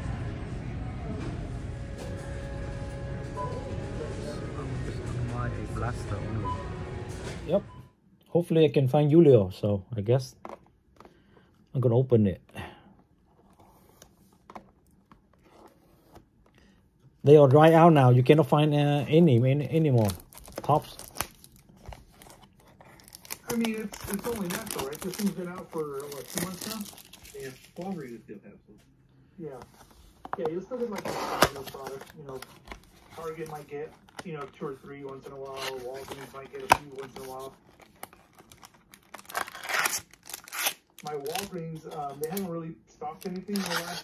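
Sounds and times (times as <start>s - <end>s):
card packs crinkling and rustling: 18.8s - 28.2s, 29.4s - 44.0s.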